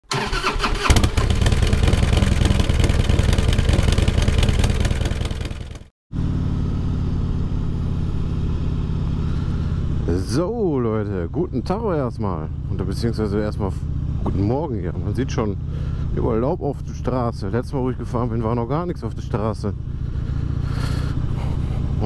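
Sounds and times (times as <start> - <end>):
motorcycle engine revving hard: 0.1 - 10.2
motorcycle engine riding steadily: 0.9 - 22.0.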